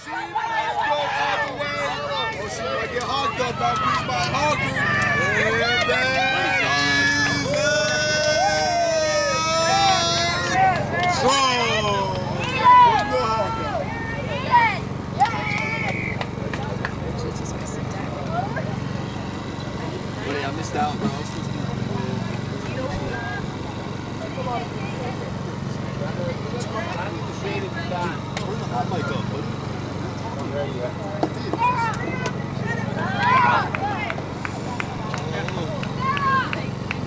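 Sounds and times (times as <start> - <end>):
voices calling across field: 0.0 - 37.0.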